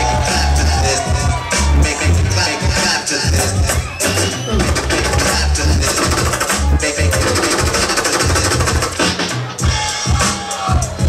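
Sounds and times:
turntable scratching: 0.0 - 9.2
heavy bass beat: 0.0 - 11.0.

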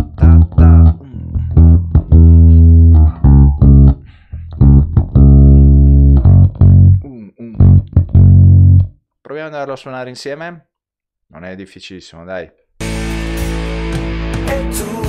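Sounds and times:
funk bass guitar line: 0.0 - 9.0, 12.8 - 15.0.

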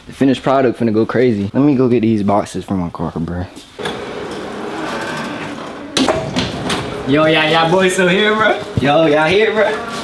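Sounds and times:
door closer noise: 3.8 - 7.1
steel door banging shut: 3.8 - 8.0.

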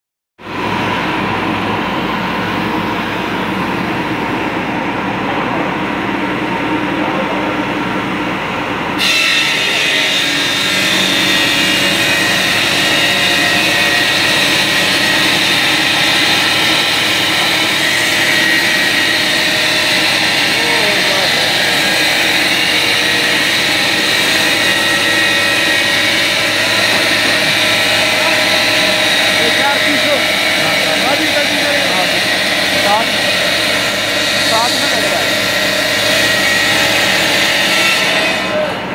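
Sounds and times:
circular saw running: 0.4 - 38.9
saw blade grinding stone: 9.0 - 38.6.

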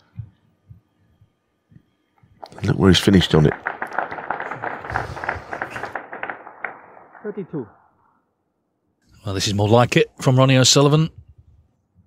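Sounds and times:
audience applauding: 3.5 - 6.3.

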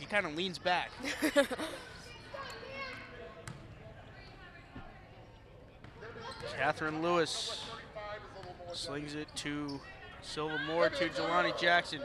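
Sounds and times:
commentator laughing: 1.0 - 1.8.

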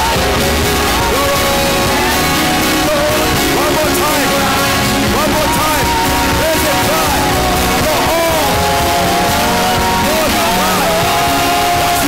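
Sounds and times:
congregation praying aloud: 0.0 - 12.0
live worship music: 0.0 - 12.0.

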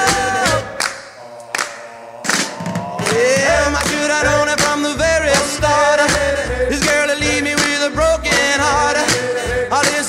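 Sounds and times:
songs in a music mix: 0.0 - 10.0.

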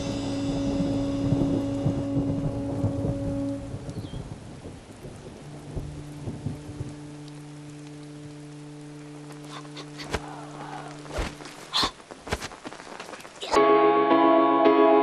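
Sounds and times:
thunder rumbling: 0.0 - 13.5
steady rain: 0.0 - 13.8.

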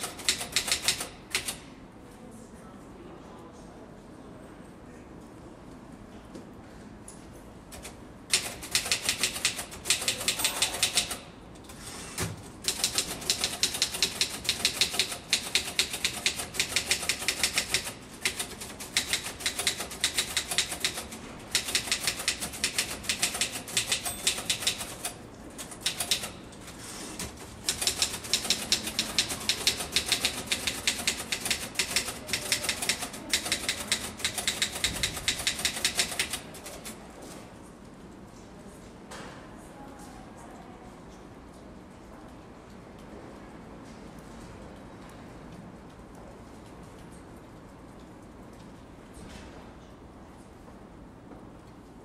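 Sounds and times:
fast typing on keyboard: 0.0 - 1.6, 7.8 - 11.2, 12.6 - 26.4, 27.2 - 37.0.

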